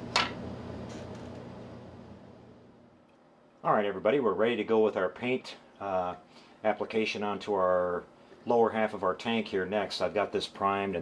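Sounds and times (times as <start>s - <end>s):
workshop room hum: 0.0s - 11.0s.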